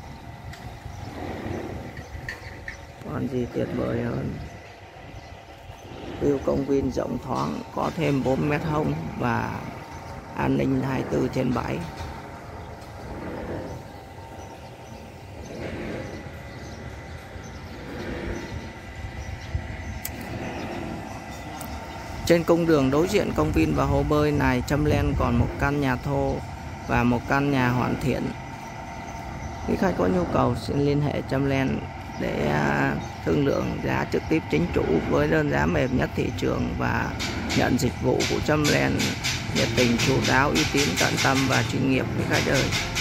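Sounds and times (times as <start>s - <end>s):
low outdoor rumble: 0.0s - 43.0s.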